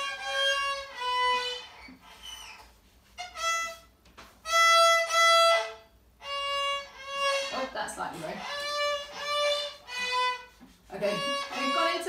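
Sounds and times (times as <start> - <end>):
violin short bowed notes: 3.2 - 12.0.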